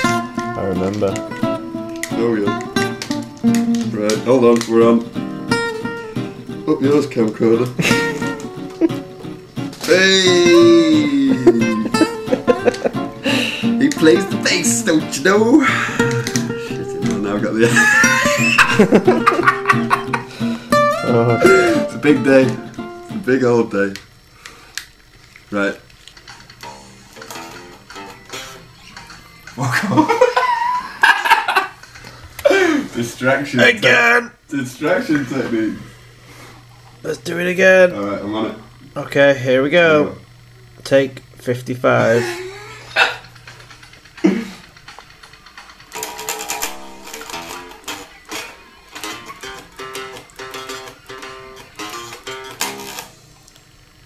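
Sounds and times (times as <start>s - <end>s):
plucked bass guitar notes: 0.0s - 23.4s.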